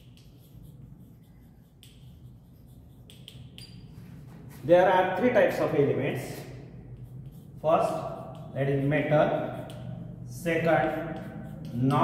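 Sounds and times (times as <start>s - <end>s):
chalk scratching on blackboard: 0.0s - 12.0s.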